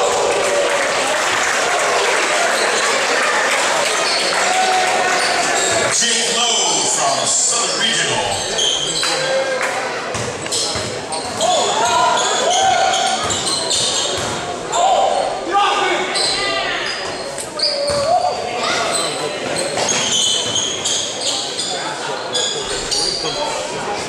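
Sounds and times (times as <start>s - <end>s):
sneaker squeaks: 8.2s - 9.3s, 10.1s - 14.4s, 16.1s - 23.7s
ball bouncing on hardwood court: 13.2s - 14.4s.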